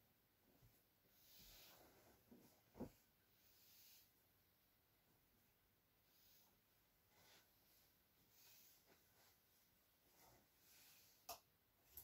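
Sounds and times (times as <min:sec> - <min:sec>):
clothing rustling: 0:00.5 - 0:04.1, 0:06.1 - 0:11.2.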